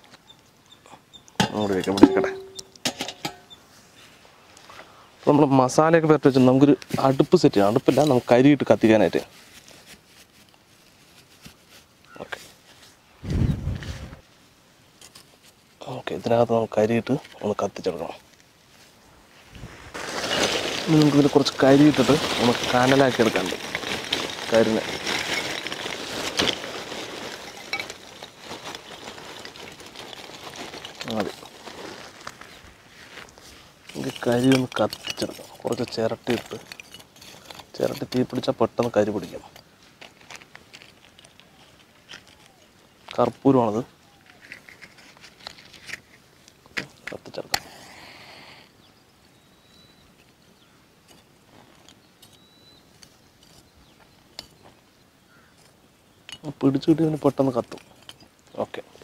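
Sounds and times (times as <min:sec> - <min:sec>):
charcoal clattering into pit: 0:01.4 - 0:03.5, 0:20.0 - 0:31.5, 0:33.9 - 0:39.6
faint ticks and rustles: 0:14.3 - 0:19.0, 0:21.0 - 0:49.4.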